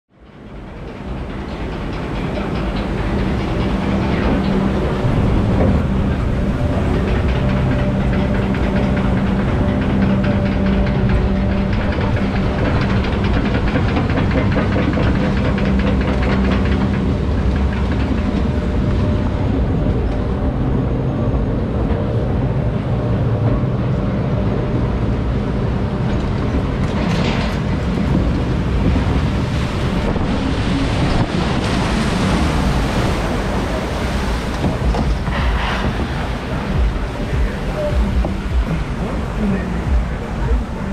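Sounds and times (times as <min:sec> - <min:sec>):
machinery hum: 0:00.1 - 0:40.9
rattling: 0:00.4 - 0:20.4
running water: 0:27.8 - 0:40.9.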